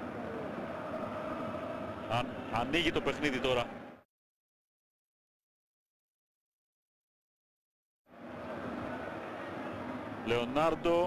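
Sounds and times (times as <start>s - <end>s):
stadium crowd ambience: 0.0s - 4.0s, 8.1s - 11.0s.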